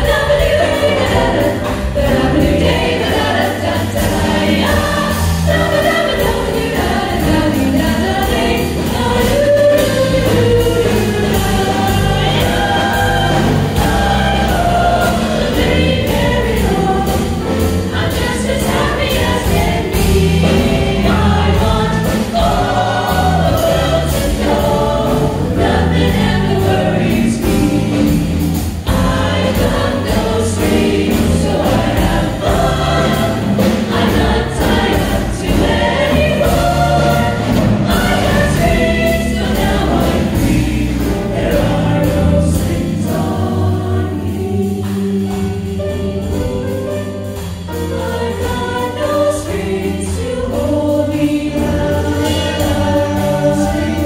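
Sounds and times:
bass line: 0.0s - 54.0s
vocal jazz ensemble singing: 0.0s - 54.0s.

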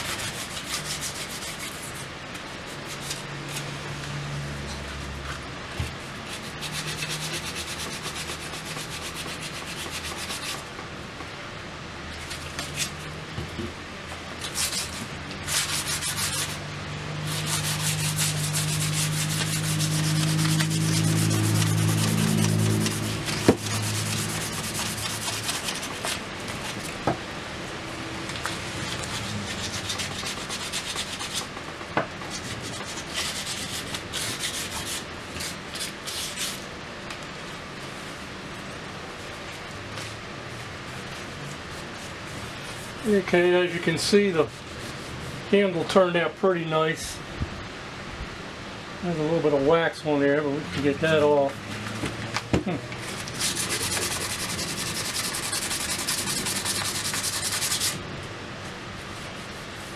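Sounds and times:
sandpaper rubbing on wood: 0.0s - 2.1s, 5.9s - 10.6s, 14.4s - 26.8s, 28.8s - 31.7s, 32.3s - 36.6s, 53.1s - 58.0s
low hum: 15.0s - 25.4s.

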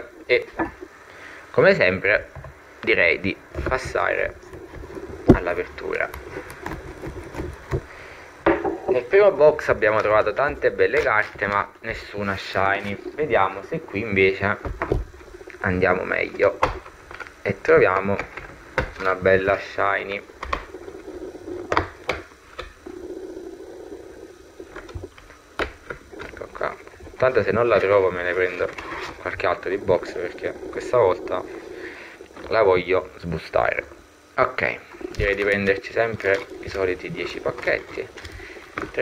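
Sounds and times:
fingers rubbing plastic film: 3.7s - 7.9s, 35.0s - 39.0s
foil packs rustling: 35.1s - 36.8s.

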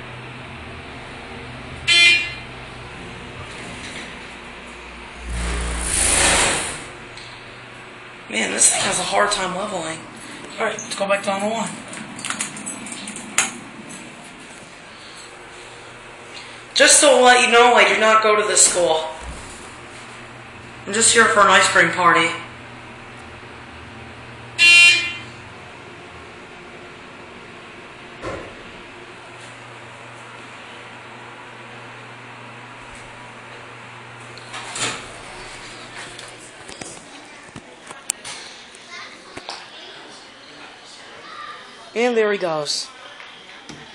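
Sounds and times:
elevator cab hum: 0.0s - 36.6s
short rush of noise: 5.2s - 7.0s
children's voices: 38.7s - 40.2s, 40.9s - 41.9s.

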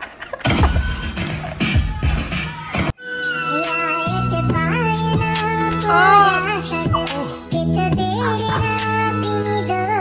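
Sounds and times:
high singing voice: 3.0s - 10.0s.

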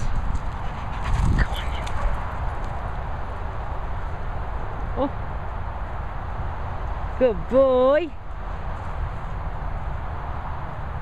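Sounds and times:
low rumbling on microphone: 0.0s - 5.0s.

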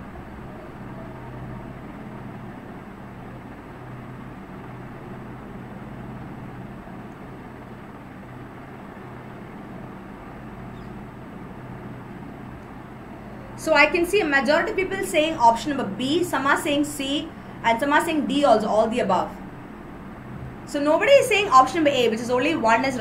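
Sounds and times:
low background hum: 0.0s - 23.0s.

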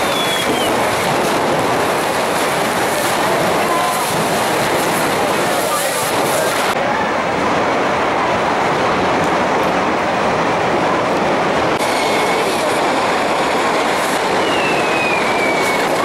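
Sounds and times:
faint falling whistle: 0.0s - 0.8s, 14.3s - 16.0s
rockets firing hissing rush: 0.0s - 6.8s, 8.5s - 16.0s.

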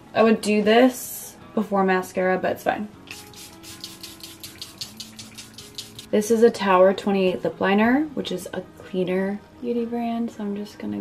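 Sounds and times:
spray pump hissing: 3.1s - 6.1s.

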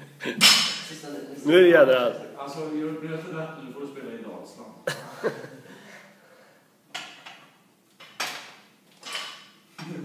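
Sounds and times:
barbell plates hitting: 0.4s - 0.9s.

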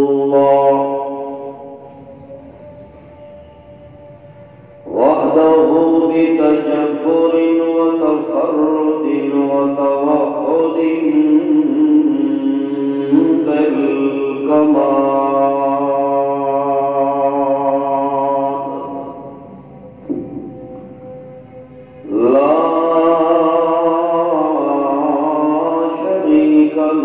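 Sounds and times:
man chanting: 0.0s - 27.0s.

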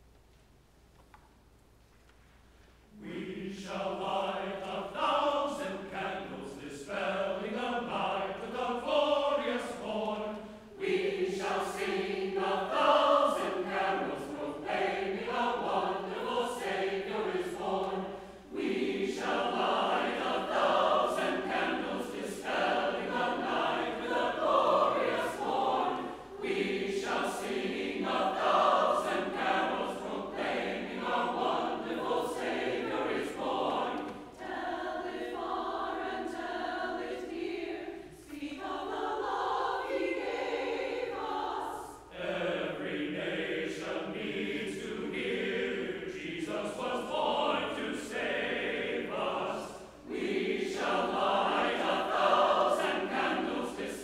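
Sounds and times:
choir singing: 2.9s - 54.0s.

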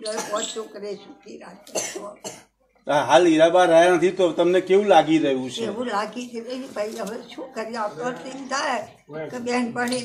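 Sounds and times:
woman coughing: 0.0s - 0.5s, 1.7s - 2.5s
elderly woman talking: 0.0s - 2.2s, 5.6s - 10.0s.

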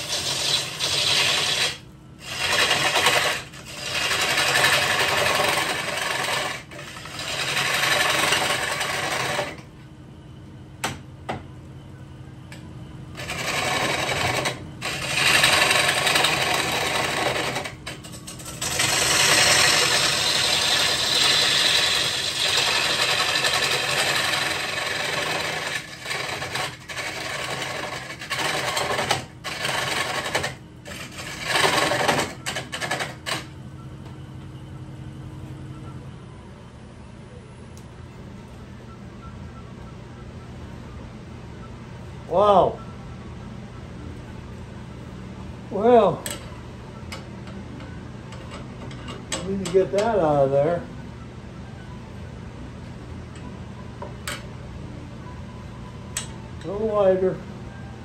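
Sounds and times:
gouge cutting wood on lathe: 0.0s - 9.6s, 13.2s - 33.5s
lathe motor hum: 0.0s - 9.7s, 13.1s - 33.5s.

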